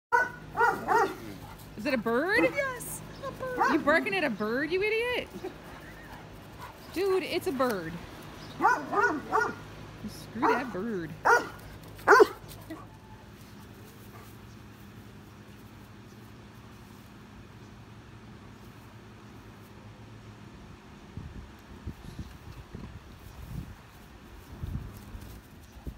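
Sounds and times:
dog barking: 0.1s - 1.6s, 8.6s - 9.6s, 10.4s - 12.4s
outdoor background noise: 0.1s - 25.9s.

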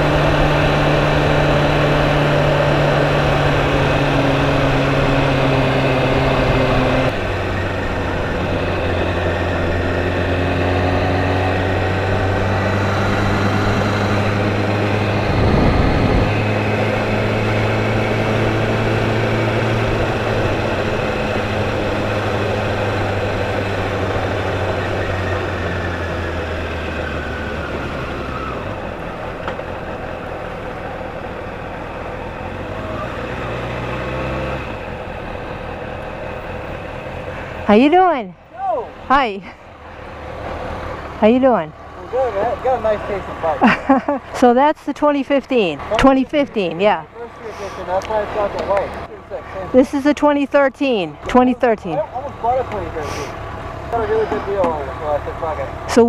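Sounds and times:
motorcycle engine running: 0.0s - 56.0s
wind on microphone: 15.0s - 16.7s.

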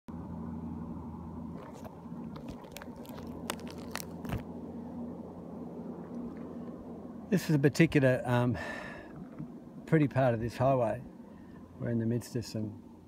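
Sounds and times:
steady low hum: 0.1s - 13.0s
phone handling clicks and crunches: 1.6s - 4.5s.

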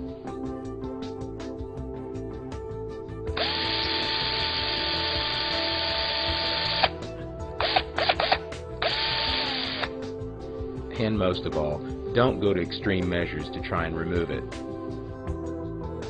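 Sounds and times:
background music: 0.0s - 16.0s
electric power drill running: 3.4s - 7.0s, 7.6s - 10.0s.

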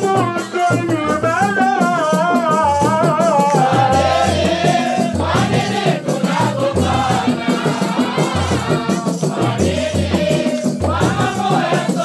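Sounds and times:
group singing devotional song: 0.0s - 12.0s
regular drum beat: 0.0s - 12.0s.

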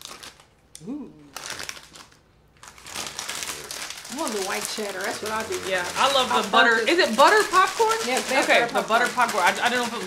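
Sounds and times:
plastic snack bag crinkling: 0.0s - 0.6s, 1.3s - 10.0s.

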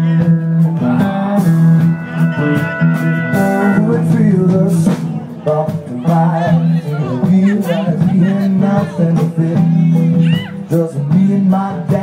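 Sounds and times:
held melody notes: 0.0s - 10.2s
acoustic guitars strummed: 0.0s - 12.0s.

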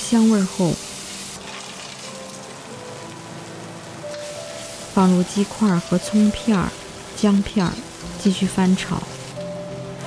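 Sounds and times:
faint sustained music notes: 0.0s - 10.0s
oil sizzling in a wok: 0.0s - 10.0s.

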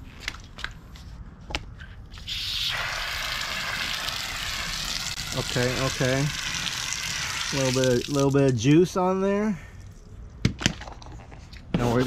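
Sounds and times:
hose spraying water: 2.2s - 8.5s.

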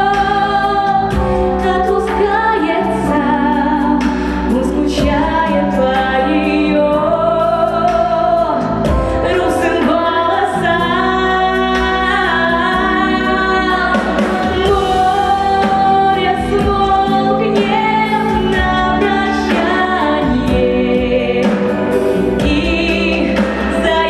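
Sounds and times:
backing music: 0.0s - 24.0s
woman singing a ballad: 0.0s - 24.0s.

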